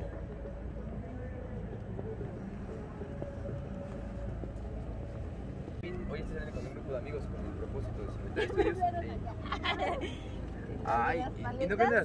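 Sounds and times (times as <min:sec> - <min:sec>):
faint voices of passers-by: 0:00.0 - 0:12.0
traffic rumble: 0:00.0 - 0:12.0.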